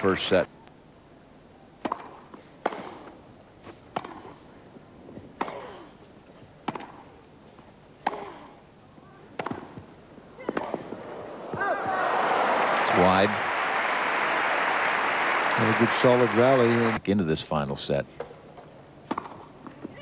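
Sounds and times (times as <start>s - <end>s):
tennis racket striking ball: 1.8s - 3.0s, 3.9s - 4.4s, 6.6s - 7.0s, 8.0s - 8.4s, 9.4s - 9.8s, 19.0s - 19.5s
crowd applause: 11.0s - 17.0s.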